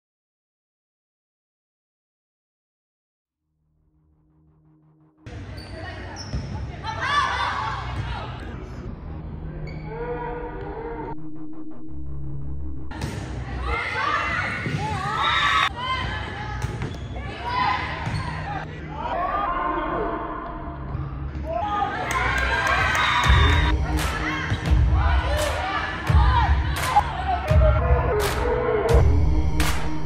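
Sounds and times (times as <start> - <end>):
background music with bass beat: 23.3 - 30.0.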